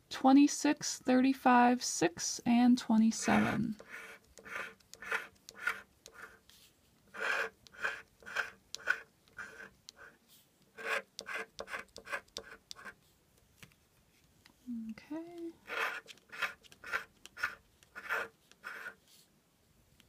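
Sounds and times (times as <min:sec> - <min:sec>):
scratch-off ticket scraping: 0:03.0 - 0:06.4, 0:07.1 - 0:10.1, 0:10.8 - 0:13.0, 0:15.6 - 0:19.0.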